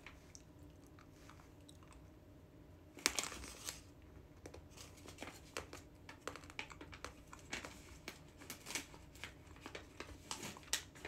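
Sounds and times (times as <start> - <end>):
plastic snack pouch crinkling: 3.0 - 3.9.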